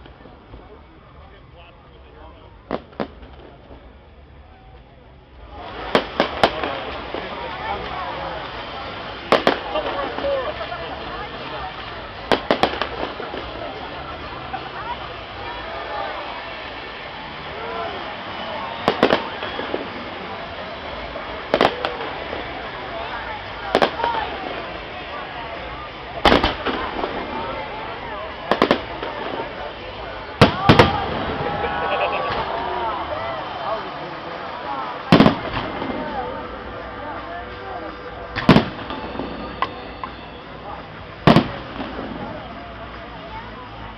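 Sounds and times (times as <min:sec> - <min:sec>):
crowd chatter: 0:00.0 - 0:43.9
fireworks bursting: 0:00.0 - 0:43.9
people's voices: 0:00.0 - 0:43.9.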